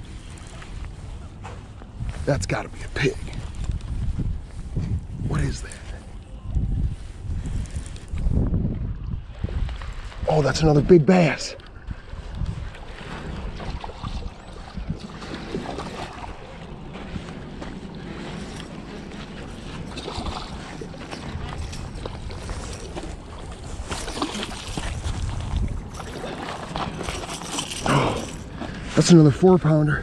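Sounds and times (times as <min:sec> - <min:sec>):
water lapping at shore: 0:00.0 - 0:02.2, 0:07.0 - 0:29.8
wind buffeting microphone: 0:00.0 - 0:30.0.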